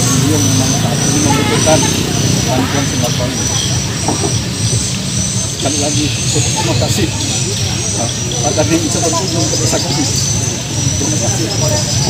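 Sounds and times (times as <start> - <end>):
man speaking: 0.0 - 4.4, 5.6 - 12.0
high-pitched whine: 0.0 - 12.0.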